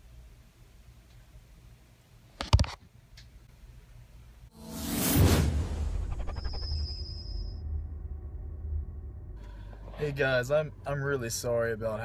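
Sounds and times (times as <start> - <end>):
whoosh: 4.5 - 10.0
deep low rumble: 4.7 - 12.0.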